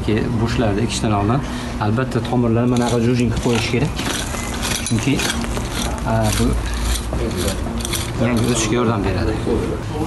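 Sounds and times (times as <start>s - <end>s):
hand cultivator scraping soil: 2.8s - 8.7s.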